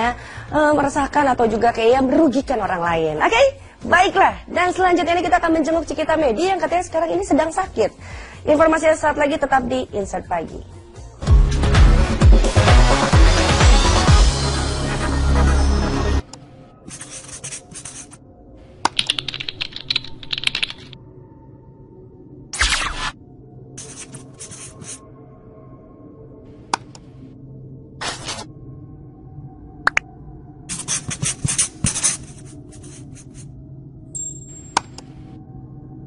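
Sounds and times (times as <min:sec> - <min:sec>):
loud electronic music: 0:11.3 - 0:16.2
keyboard typing clicks: 0:18.9 - 0:21.0.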